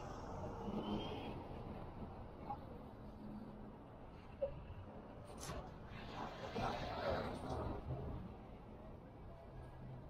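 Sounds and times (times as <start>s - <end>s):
street traffic hum and rumble: 0.0s - 10.0s.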